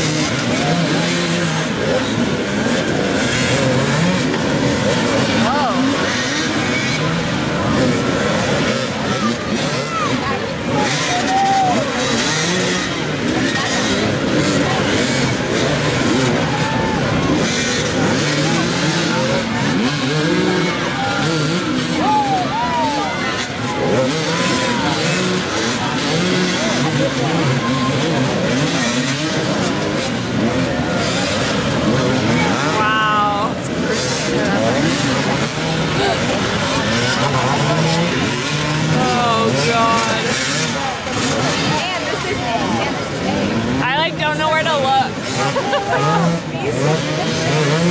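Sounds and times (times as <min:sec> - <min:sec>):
dirt bike engines revving: 0:00.0 - 0:47.9.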